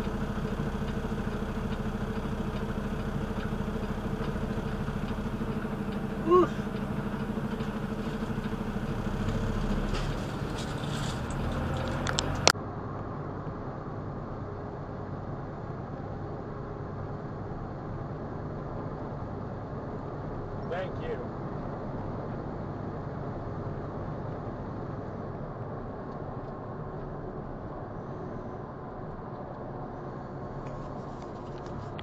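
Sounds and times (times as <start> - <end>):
tyre noise: 0.0 - 12.5
truck engine drone: 0.0 - 32.0.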